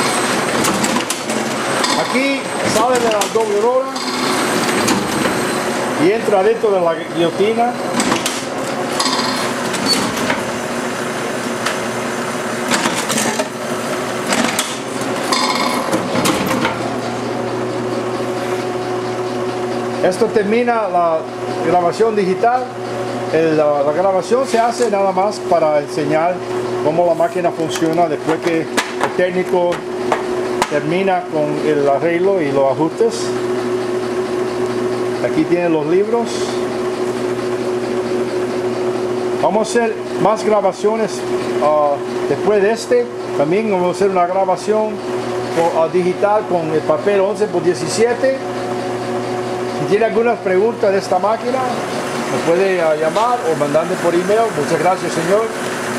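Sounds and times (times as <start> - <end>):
booklet machine mechanical hum: 0.0 - 55.9.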